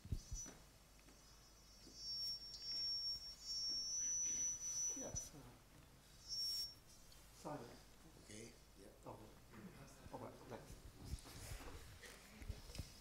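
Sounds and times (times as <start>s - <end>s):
high-pitched whistling tone: 0.0s - 7.2s.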